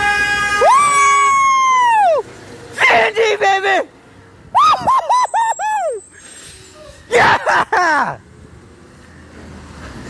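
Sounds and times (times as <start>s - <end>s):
man whooping in falsetto: 0.0s - 2.2s, 4.6s - 6.0s.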